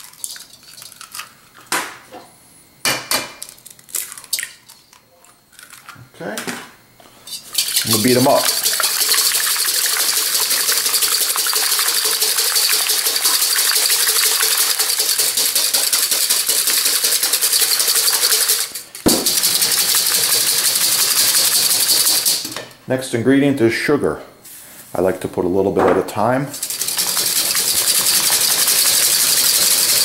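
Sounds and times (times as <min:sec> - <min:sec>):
whisk beating eggs in metal bowl: 0:07.5 - 0:22.6, 0:26.5 - 0:30.0.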